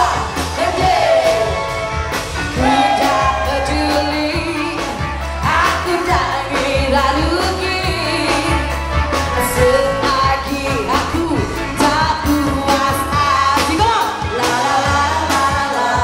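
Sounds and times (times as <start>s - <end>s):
live band playing pop song: 0.0s - 16.0s.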